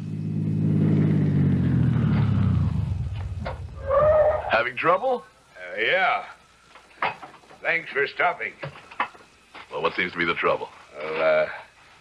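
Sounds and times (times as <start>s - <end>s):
car driving up and stopping: 0.0s - 4.1s.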